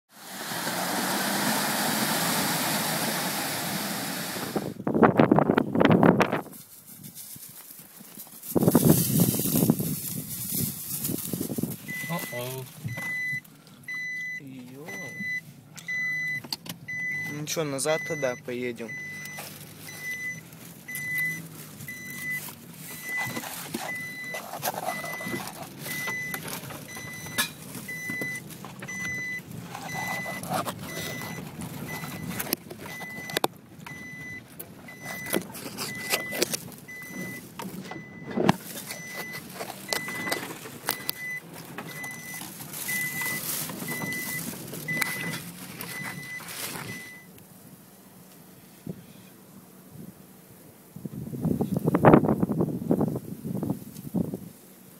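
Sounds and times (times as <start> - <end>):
car engine and tyre noise: 0.1 - 54.9
faint wind: 0.1 - 54.9
electronic warning beep: 11.9 - 40.4, 41.0 - 47.3.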